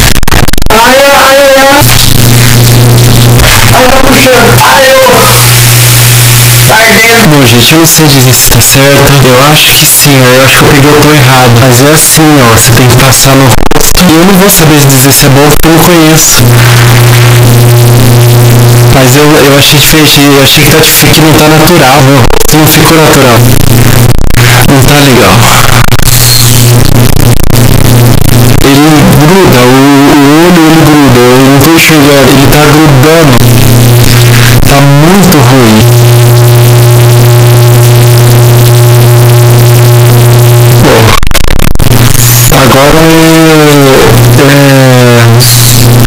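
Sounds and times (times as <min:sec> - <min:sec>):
loud clipped low drone: 0:00.2 - 0:13.6, 0:16.4 - 0:46.0
man humming low note: 0:27.9 - 0:41.2, 0:42.5 - 0:46.0.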